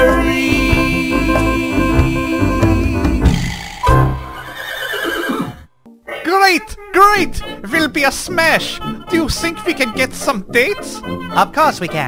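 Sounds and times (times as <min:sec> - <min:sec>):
horse whinnying: 0:03.5 - 0:05.7.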